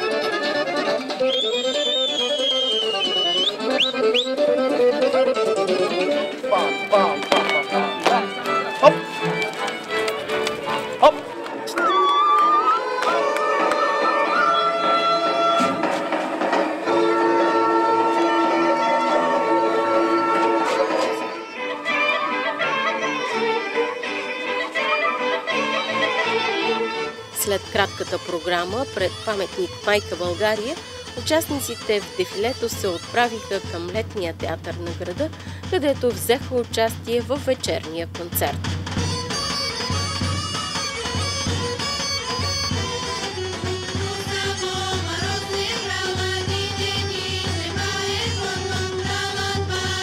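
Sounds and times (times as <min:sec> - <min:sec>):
folk dance music with fiddle: 0:00.0 - 0:50.0.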